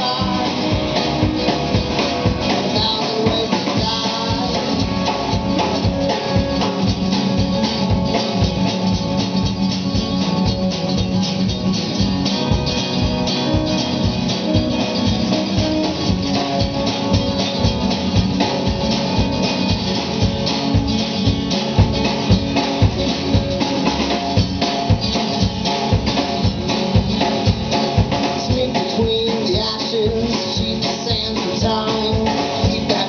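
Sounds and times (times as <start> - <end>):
drum kit beat: 0.0 - 33.0
electric guitar: 0.0 - 33.0
strummed acoustic guitar: 0.0 - 33.0
upright bass: 0.0 - 33.0.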